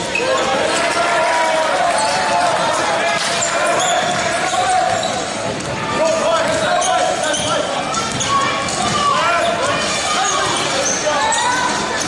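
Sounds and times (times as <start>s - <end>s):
sneaker squeaks: 0.0s - 0.8s, 1.9s - 12.0s
echoing hubbub of voices: 0.0s - 12.0s.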